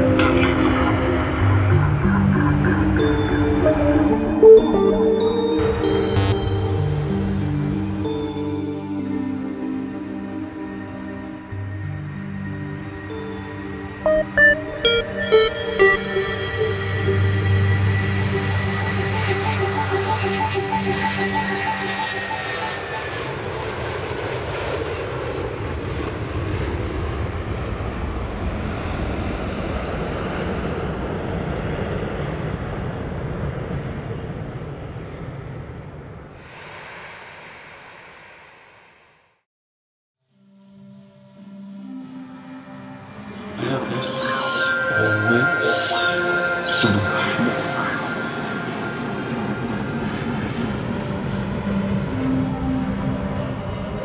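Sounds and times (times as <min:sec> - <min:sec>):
jet airliner engines roaring overhead: 0:00.0 - 0:39.0, 0:43.0 - 0:54.0
faint engine whine: 0:00.9 - 0:39.2, 0:45.0 - 0:54.0.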